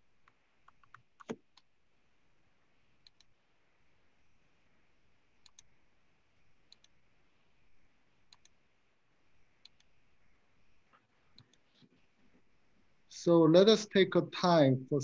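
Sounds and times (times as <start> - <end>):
faint computer mouse clicking: 0.2 - 1.7, 3.0 - 3.4, 5.4 - 5.7, 6.7 - 7.0, 8.3 - 8.6, 9.6 - 10.0, 10.9 - 12.0.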